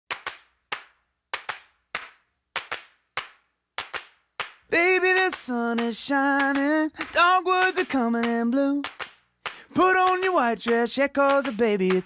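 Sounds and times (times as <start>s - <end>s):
rhythmic sharp claps: 0.1s - 12.0s.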